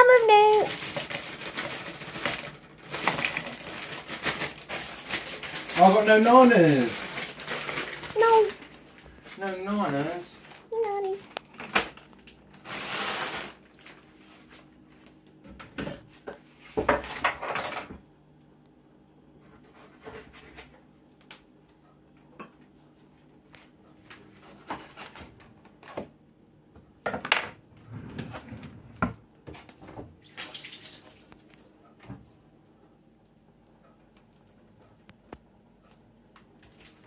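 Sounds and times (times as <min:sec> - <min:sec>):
noisy bursts of running water: 0:30.2 - 0:31.4.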